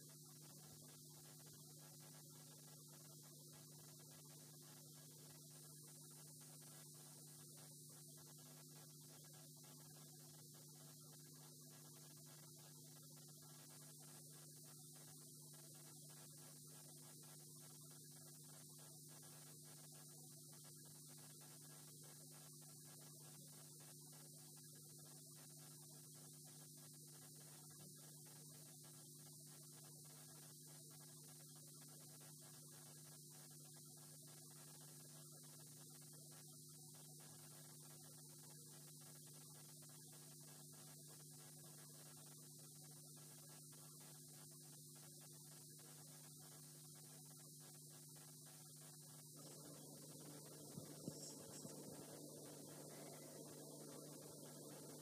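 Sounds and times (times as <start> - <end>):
faint hiss: 0.0 - 55.0
low electrical hum: 0.0 - 55.0.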